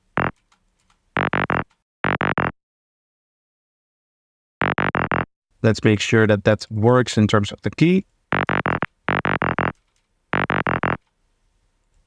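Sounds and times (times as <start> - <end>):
synthesizer stabs: 8.4 - 9.7, 10.4 - 11.0.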